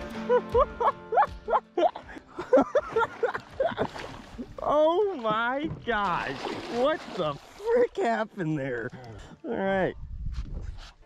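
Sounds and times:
man laughing excitedly: 0.2s - 4.1s.

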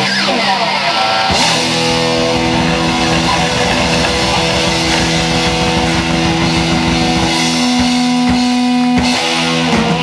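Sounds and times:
bass guitar: 0.0s - 10.0s
distorted electric guitar chord: 1.2s - 8.9s
busy drums: 1.3s - 10.0s.

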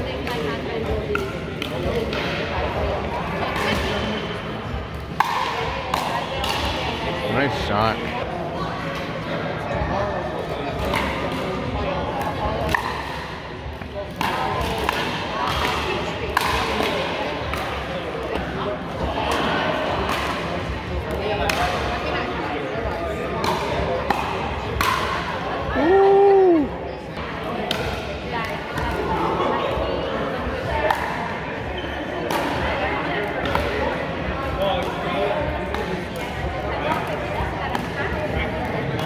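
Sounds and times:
voices from nearby courts: 6.0s - 8.5s.

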